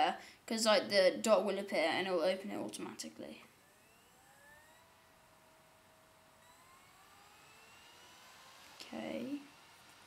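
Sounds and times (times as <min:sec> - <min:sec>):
dvd drive spinning up: 0:03.4 - 0:10.0.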